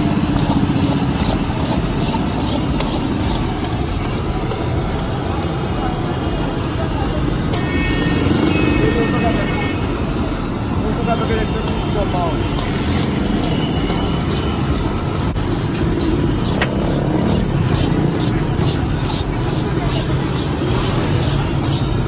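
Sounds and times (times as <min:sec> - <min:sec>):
street traffic: 0:00.0 - 0:22.0
voices: 0:04.0 - 0:14.2.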